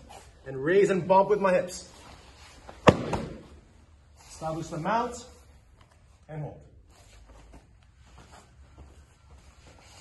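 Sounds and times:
rustling of bodies on mats: 0.0s - 10.0s.

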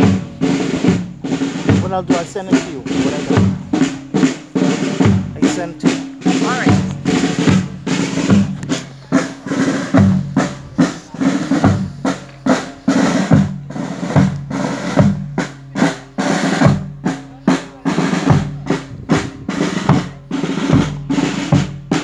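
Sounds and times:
marching snare and bass drums: 0.0s - 22.0s.

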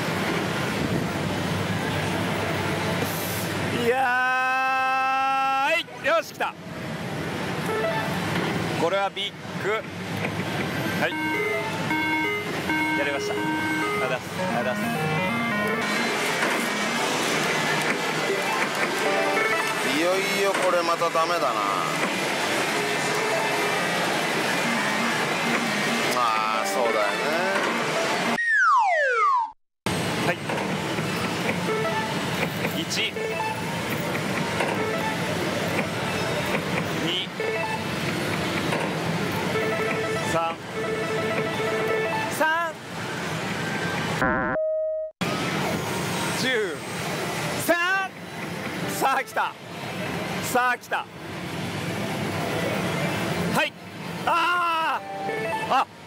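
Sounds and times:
electronic beeps and jingles: 11.0s - 16.2s
electronic beeping fanfare melody: 11.0s - 17.0s, 18.3s - 20.1s, 23.2s - 29.5s, 39.6s - 42.4s, 44.2s - 45.1s, 55.0s - 55.8s
slot machines noise: 11.1s - 20.4s.

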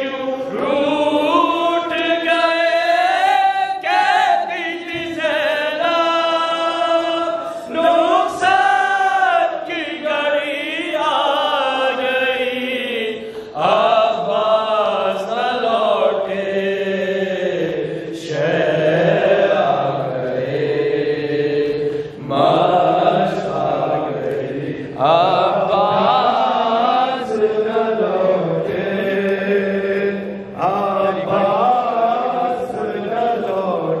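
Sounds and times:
men chanting into a microphone: 0.0s - 34.0s.

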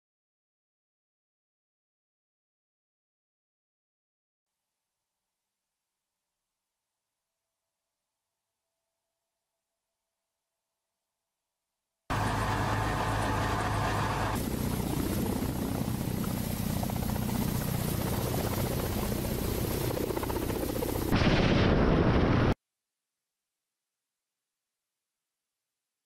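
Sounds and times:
helicopter rotor and engines: 12.1s - 22.6s.

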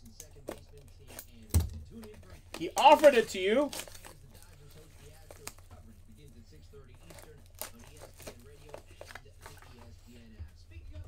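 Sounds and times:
faint talking: 2.3s - 11.0s.

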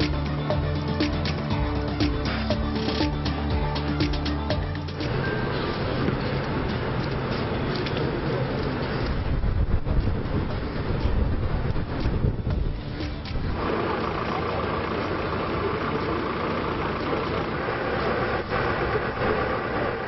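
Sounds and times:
vehicle engines idling: 0.0s - 20.0s.

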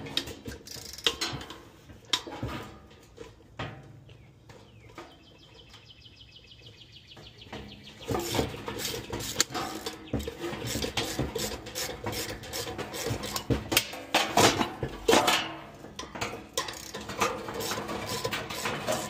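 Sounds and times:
wrench clicking: 0.6s - 1.2s, 16.6s - 19.0s
metal knocking and rattling: 7.2s - 19.0s.

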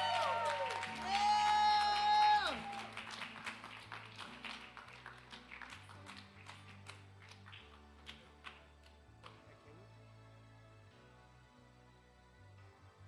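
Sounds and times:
hand clapping: 0.0s - 9.6s
acoustic guitar: 0.0s - 11.7s.

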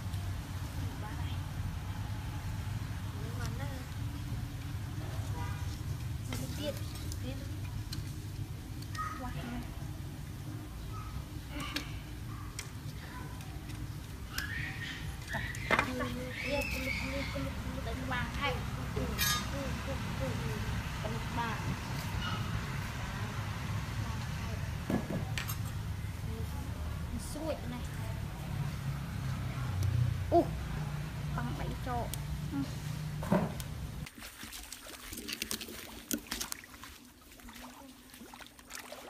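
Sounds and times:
low rumble of distant traffic: 0.0s - 34.1s.

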